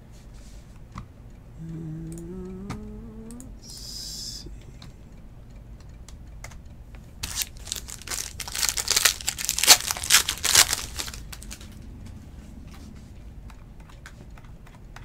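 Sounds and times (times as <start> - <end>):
foil wrapper tearing and crinkling: 7.2 - 11.7.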